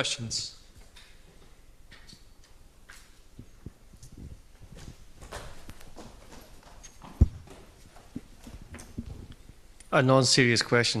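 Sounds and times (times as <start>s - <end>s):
faint knocks and rustling: 0.7s - 9.7s.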